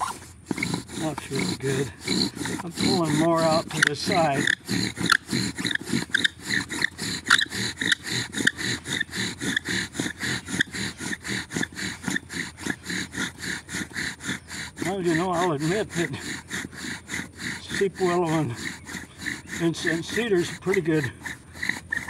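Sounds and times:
wood-on-wood friction grinding: 0.0 - 22.0.

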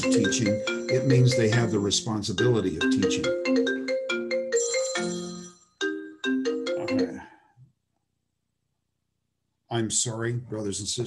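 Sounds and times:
phone ringtone marimba melody: 0.0 - 7.4.

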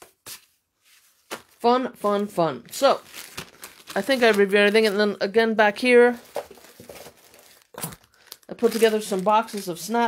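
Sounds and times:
plastic bags rustling: 2.5 - 10.0.

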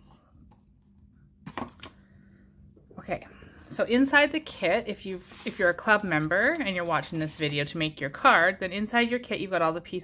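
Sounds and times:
faint steady hum: 0.0 - 5.4.

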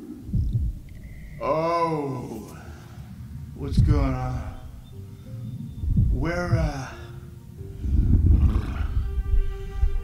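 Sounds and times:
film soundtrack music: 0.0 - 10.0
low rumble: 0.0 - 10.0.

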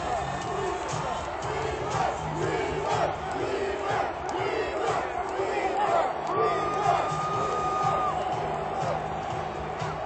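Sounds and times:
stadium crowd cheering and yelling: 0.0 - 10.0.

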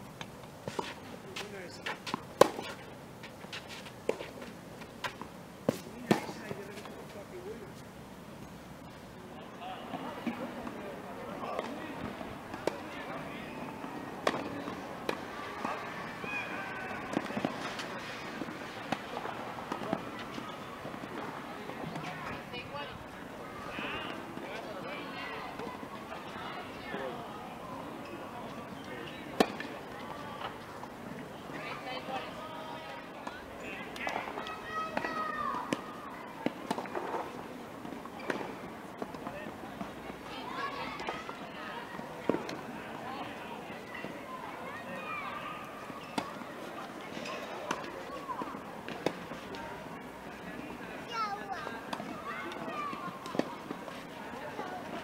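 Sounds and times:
people talking in background: 0.0 - 55.0
tennis balls struck by rackets: 0.2 - 7.0, 9.8 - 22.4, 28.5 - 32.4, 33.2 - 40.2, 41.9 - 42.8, 46.1 - 49.6, 51.8 - 54.0.

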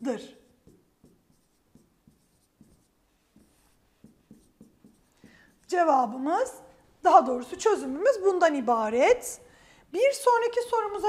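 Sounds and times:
pen tapping on touchscreen: 0.6 - 5.5.

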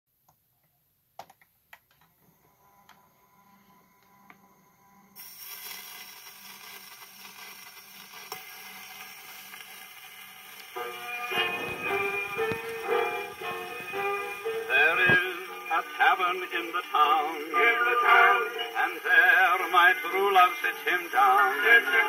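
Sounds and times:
record surface hiss: 0.1 - 22.0
dance-band music on gramophone: 10.8 - 22.0.

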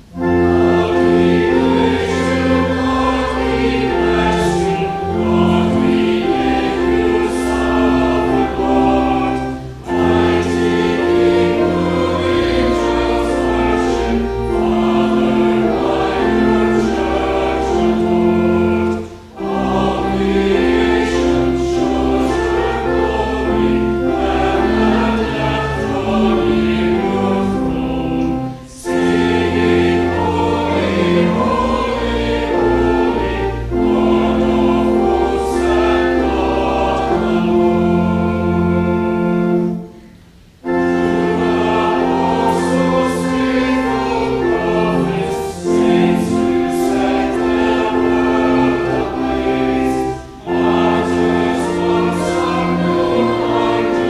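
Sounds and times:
choir and congregation singing hymn: 0.0 - 54.0
low organ accompaniment: 0.0 - 54.0.

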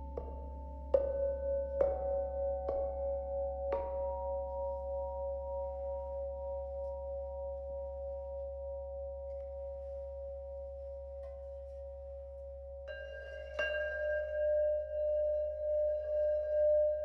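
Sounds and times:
singing bowl ringing: 0.0 - 17.0.

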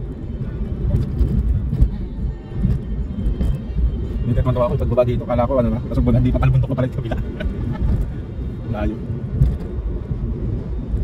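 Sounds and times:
car interior road rumble: 0.0 - 11.0.

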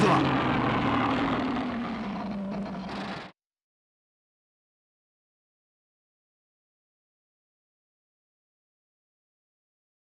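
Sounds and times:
monster roaring: 0.0 - 3.3.

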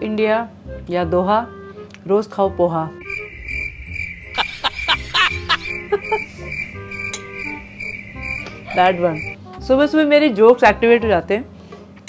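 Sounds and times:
crickets chirping: 3.0 - 9.4.

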